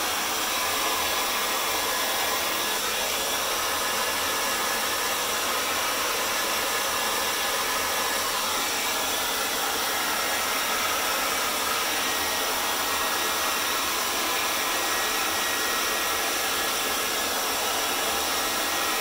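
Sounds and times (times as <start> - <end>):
hair dryer running: 0.0 - 19.0.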